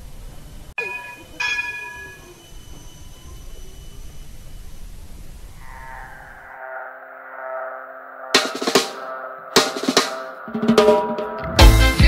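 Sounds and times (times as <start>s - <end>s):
tram wheels rumbling: 0.0s - 4.7s
tram bell ringing: 0.8s - 3.9s.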